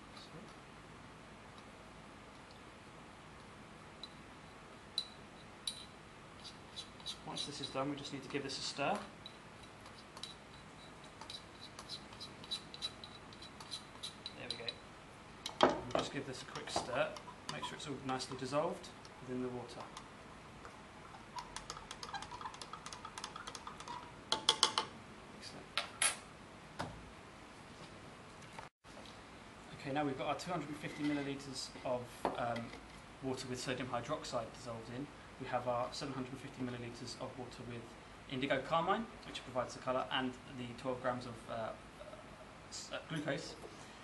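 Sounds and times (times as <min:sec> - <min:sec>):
stirring rod clinking on glass: 0:21.1 - 0:24.9.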